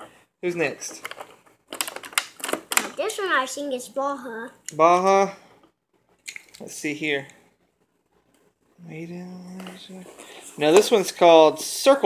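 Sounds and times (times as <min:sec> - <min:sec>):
plastic blister tray crackling: 0:00.8 - 0:03.0.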